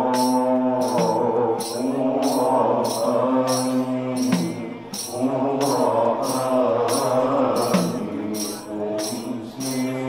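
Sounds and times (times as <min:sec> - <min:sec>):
jingling percussion beat: 0:00.0 - 0:10.0
men chanting in unison: 0:00.0 - 0:10.0.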